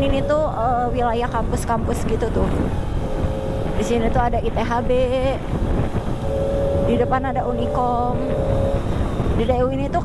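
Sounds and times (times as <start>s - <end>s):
motorcycle cruising: 0.0s - 10.0s
steady hum: 0.0s - 10.0s
wind rushing over microphone: 0.0s - 10.0s.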